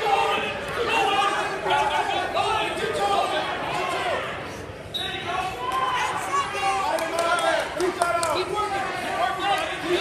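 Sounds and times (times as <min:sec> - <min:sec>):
people shouting in echoing hall: 0:00.0 - 0:10.0.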